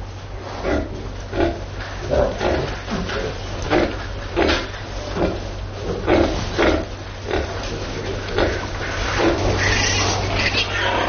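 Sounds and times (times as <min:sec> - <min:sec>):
pigs grunting: 0:00.6 - 0:11.0.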